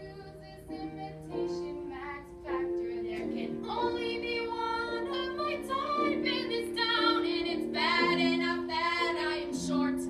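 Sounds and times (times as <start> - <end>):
young female voices singing: 0.0 - 10.0.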